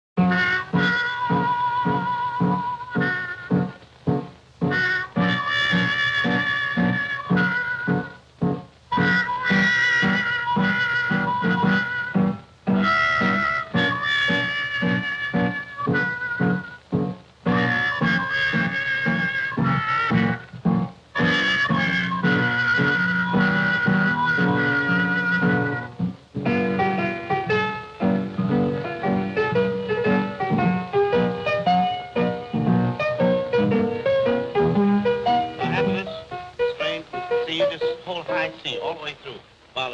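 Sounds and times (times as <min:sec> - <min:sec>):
jazz orchestra music: 0:00.2 - 0:39.4.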